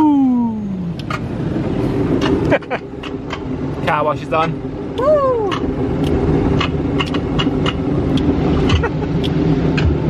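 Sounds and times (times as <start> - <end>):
car wash machinery rumble: 0.0 - 10.0.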